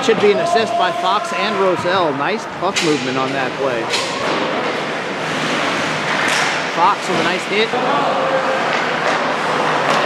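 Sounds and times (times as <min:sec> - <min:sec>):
man speaking: 0:00.0 - 0:03.9, 0:06.7 - 0:08.0
arena crowd noise: 0:00.0 - 0:10.0.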